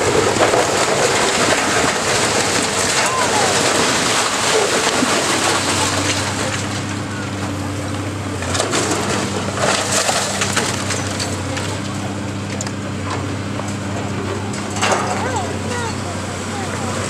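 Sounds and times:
cracking and clatter: 0.0 - 15.8
diesel engine droning: 0.0 - 17.0
masonry crumbling and crashing: 0.0 - 17.0.

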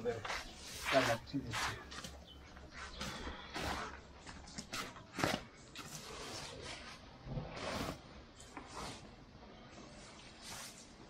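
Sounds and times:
footsteps on dirt: 0.1 - 5.5.

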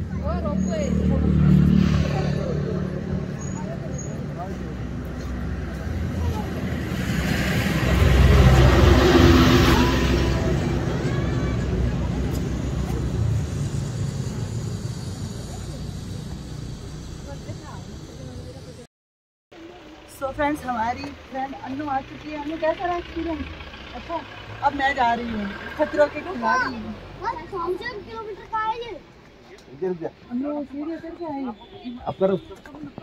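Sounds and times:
zipline trolley whirring on cable: 9.7 - 18.8.

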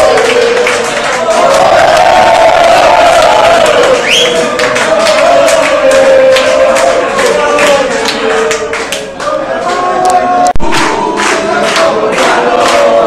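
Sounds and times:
crowd singing a chant: 0.0 - 13.0
hand claps: 0.0 - 13.0.

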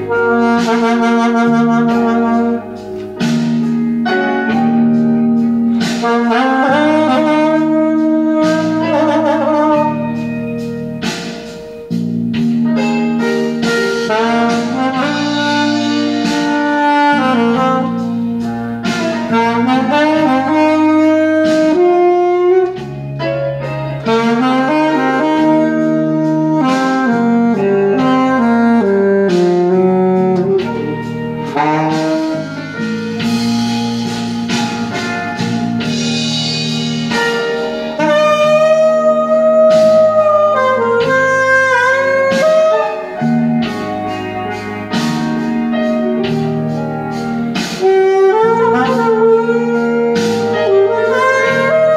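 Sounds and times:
alto saxophone blues solo: 0.0 - 51.9
backing track: 0.0 - 51.9.

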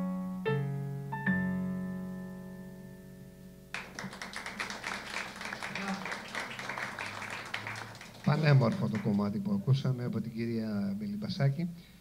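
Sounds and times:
audience applause: 3.8 - 9.4.

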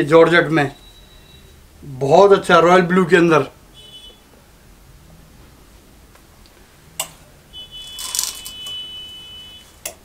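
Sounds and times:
steady high-pitched beep: 0.8 - 1.6.

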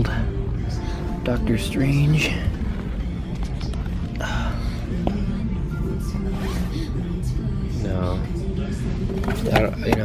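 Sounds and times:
low hum: 0.0 - 9.5
store background music: 0.0 - 10.0.

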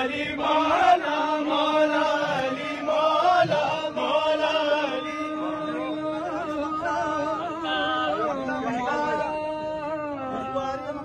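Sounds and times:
man singing into microphone: 0.0 - 11.0
steady low drone note: 0.0 - 11.0.

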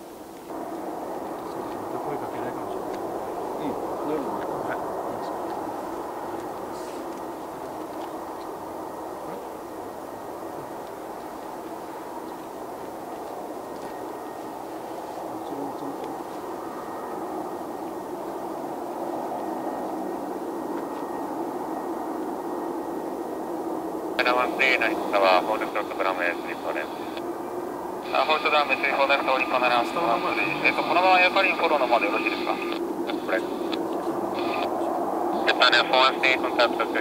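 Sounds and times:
distant jet engines rumbling: 0.0 - 37.0.

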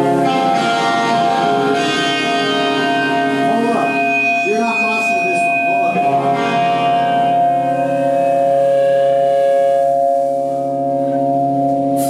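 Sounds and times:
electric guitar chord drone: 0.0 - 12.0.

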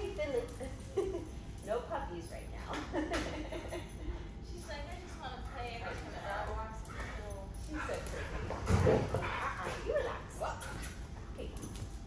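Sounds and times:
woman's voice: 0.0 - 0.8, 4.4 - 8.2.

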